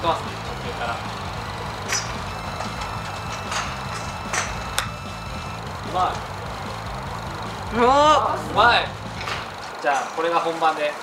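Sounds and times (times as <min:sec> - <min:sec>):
low background rumble: 0:00.0 - 0:09.7
golf club striking ball: 0:01.8 - 0:05.2, 0:09.0 - 0:09.8.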